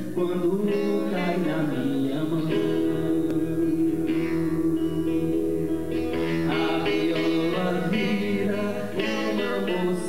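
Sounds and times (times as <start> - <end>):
acoustic guitar chords: 0.0 - 10.0
man singing: 0.0 - 10.0.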